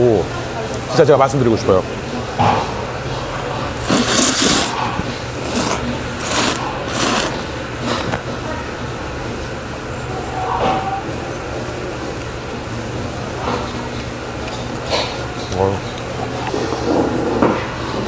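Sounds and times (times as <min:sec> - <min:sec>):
man slurping noodles: 0:03.7 - 0:08.2.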